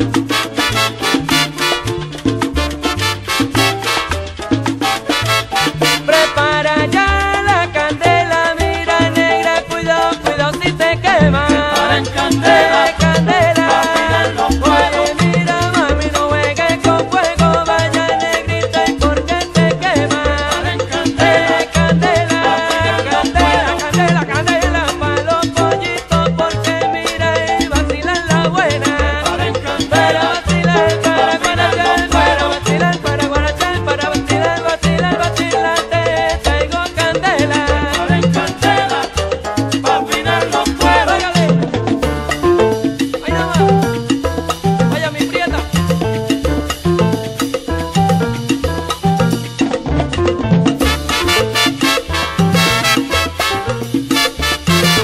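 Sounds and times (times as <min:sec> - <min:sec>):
instrumental salsa music: 0:00.0 - 0:55.0.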